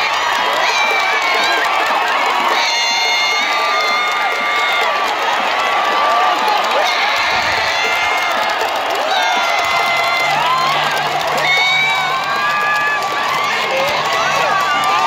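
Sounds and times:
stadium crowd cheering: 0.0s - 15.0s.

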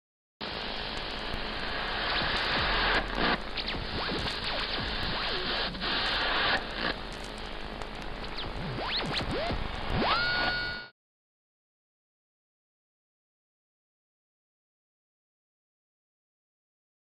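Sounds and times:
static hiss: 0.4s - 10.9s.

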